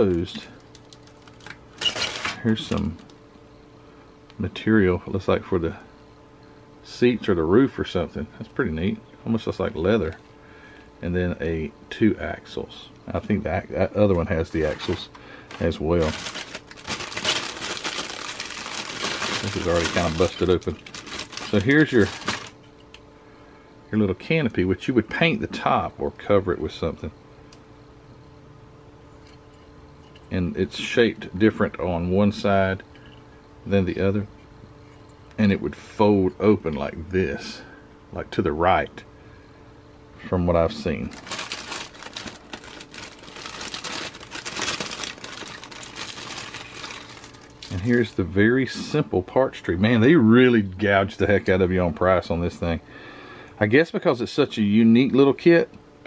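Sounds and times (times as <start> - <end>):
plastic bag crinkling: 0.0 - 3.1, 14.6 - 22.6, 41.0 - 48.2.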